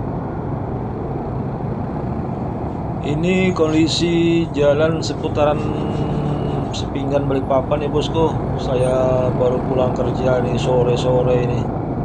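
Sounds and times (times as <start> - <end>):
motor scooter engine rumble: 0.0 - 11.6
slow motorcycle and car traffic: 0.0 - 12.0.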